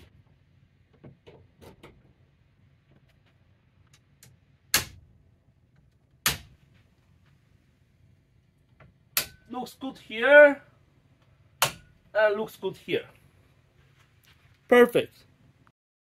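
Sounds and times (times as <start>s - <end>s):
circuit breakers snapping on: 11.6s - 12.0s.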